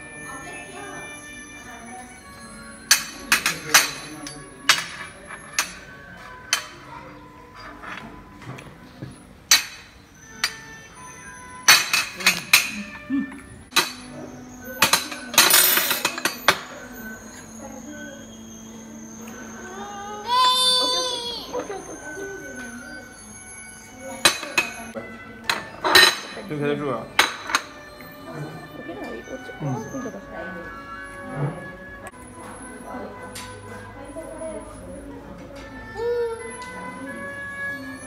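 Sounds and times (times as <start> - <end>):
spoons clinking on plates: 2.8 - 8.6, 9.5 - 13.1, 13.7 - 17.5, 23.8 - 28.2
toddler high-pitched vocal sound: 19.6 - 21.6, 35.9 - 36.6.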